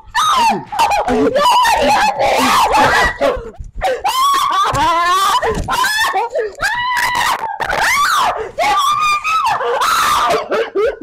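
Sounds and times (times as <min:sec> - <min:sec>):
woman screaming: 0:00.1 - 0:10.5.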